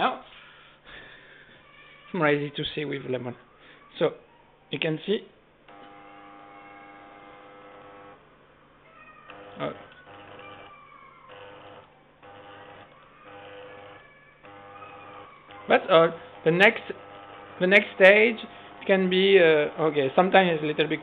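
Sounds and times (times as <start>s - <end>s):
small electric motors whining: 5.7s - 8.2s, 9.3s - 10.7s, 11.3s - 21.0s.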